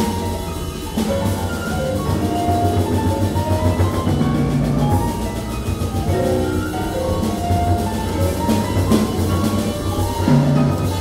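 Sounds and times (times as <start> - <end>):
bass: 0.0 - 11.0
drums: 0.0 - 11.0
piano: 0.0 - 11.0.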